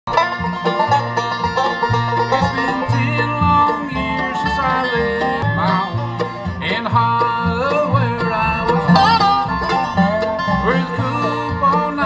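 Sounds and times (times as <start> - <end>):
bluegrass band playing: 0.1 - 12.0
sliding guitar notes: 0.1 - 12.0.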